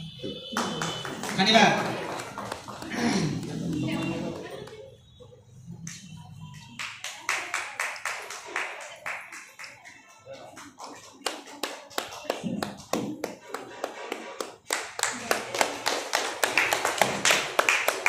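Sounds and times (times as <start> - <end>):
audience clapping: 0.0 - 5.0, 5.8 - 18.0.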